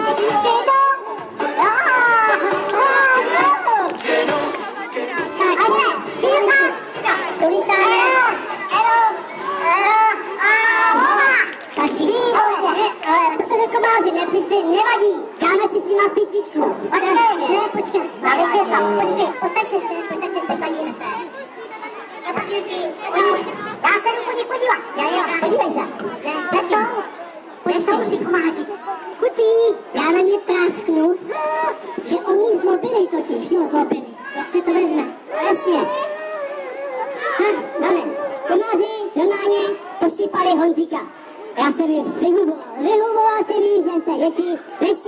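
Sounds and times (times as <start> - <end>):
children calling out: 0.0 - 14.1, 18.3 - 27.6, 31.2 - 33.4, 34.0 - 40.0
person speaking: 11.4 - 21.0.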